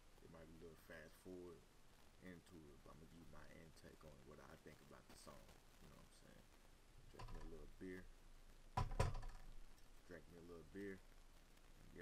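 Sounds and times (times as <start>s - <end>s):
glass bottle knocks: 8.8s - 9.4s.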